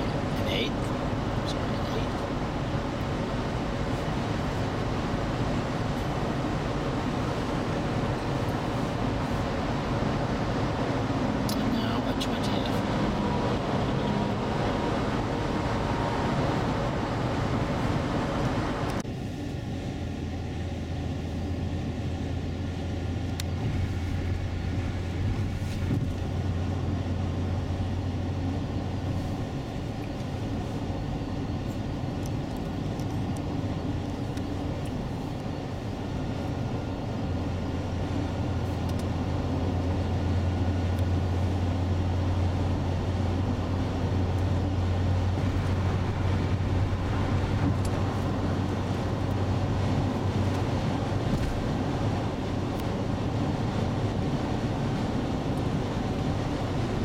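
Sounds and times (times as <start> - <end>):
road and engine drone in car: 0.0 - 57.0.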